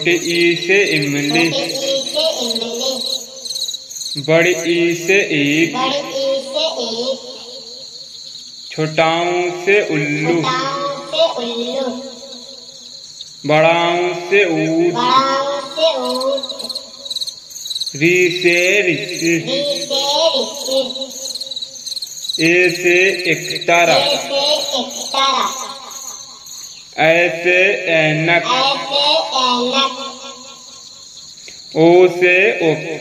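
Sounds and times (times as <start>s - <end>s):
person chanting loudly: 0.0s - 3.0s, 4.2s - 7.2s, 8.7s - 12.2s, 13.4s - 16.5s, 18.0s - 21.1s, 22.4s - 25.6s, 27.0s - 30.3s, 31.8s - 33.0s
person speaking: 0.0s - 3.2s, 4.2s - 7.4s, 8.7s - 12.2s, 13.5s - 16.7s, 18.0s - 21.1s, 22.4s - 25.8s, 27.0s - 30.2s, 31.7s - 33.0s
crickets chirping: 0.0s - 33.0s
faint high background hiss: 0.0s - 33.0s.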